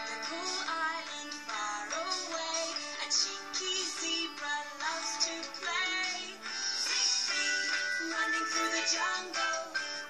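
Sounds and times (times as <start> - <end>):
cartoon theme song on television: 0.0 - 10.0.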